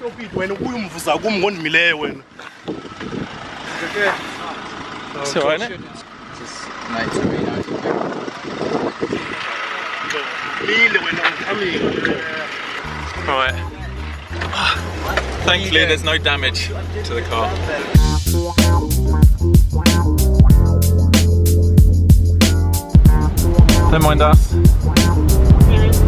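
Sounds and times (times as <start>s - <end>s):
people talking: 0.0s - 2.2s, 3.7s - 7.8s, 9.4s - 18.0s, 23.8s - 24.5s, 25.6s - 26.0s
lorry engine idling: 1.7s - 18.2s, 21.8s - 26.0s.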